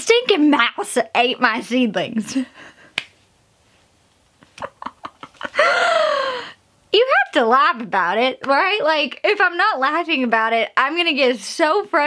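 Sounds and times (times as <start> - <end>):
woman laughing: 4.4 - 6.5.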